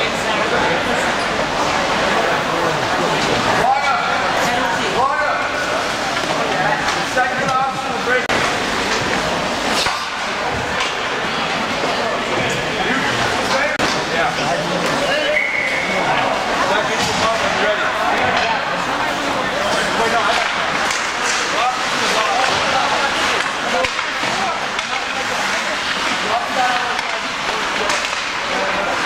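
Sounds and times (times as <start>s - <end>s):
people talking and calling out: 0.0s - 29.0s.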